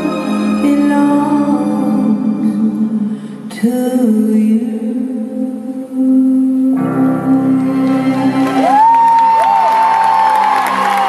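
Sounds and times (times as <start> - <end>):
live music: 0.0 - 3.7, 6.7 - 11.0
crowd cheering and applauding: 7.8 - 11.0.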